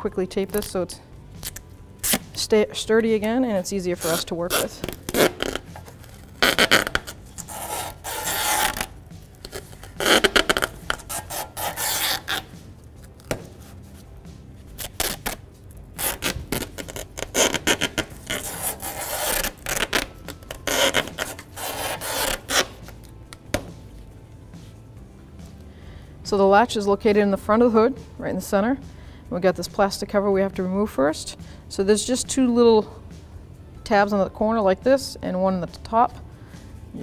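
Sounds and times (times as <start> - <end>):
masking tape pulled off roll: 1.4 - 2.4, 4.0 - 13.8, 14.7 - 15.4, 16.0 - 23.2.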